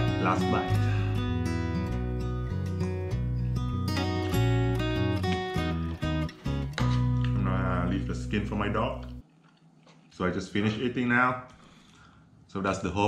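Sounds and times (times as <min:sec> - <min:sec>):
acoustic guitar strumming: 0:00.0 - 0:08.4
steady bass notes: 0:00.0 - 0:09.2.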